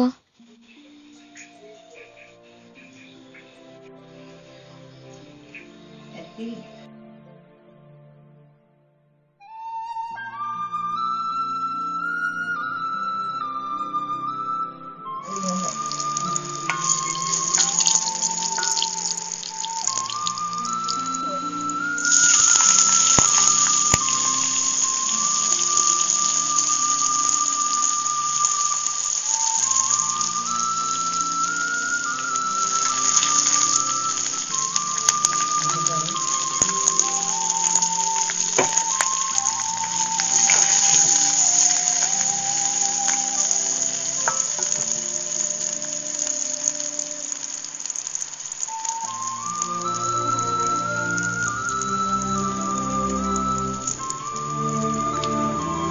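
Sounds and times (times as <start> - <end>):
background music: 0.0 - 55.9
oil sizzling in a pan: 15.3 - 55.9.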